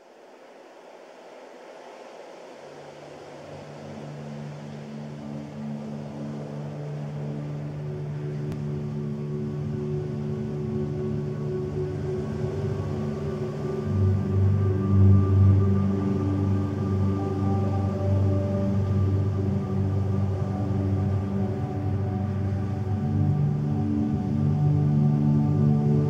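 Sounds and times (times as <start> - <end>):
dark ambient music: 0.0 - 26.0
soft wash of noise: 0.0 - 26.0
low drone notes: 2.5 - 26.0.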